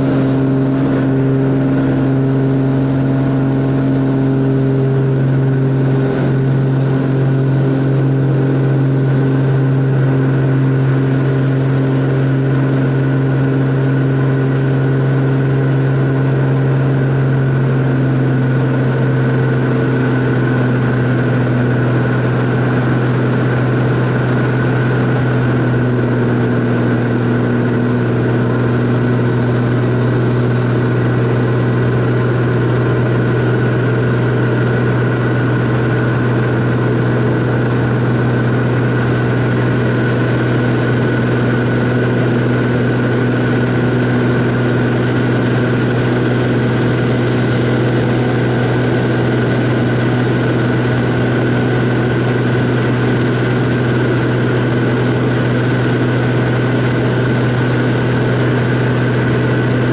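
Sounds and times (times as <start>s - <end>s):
propeller plane engine drone: 0.0s - 59.9s.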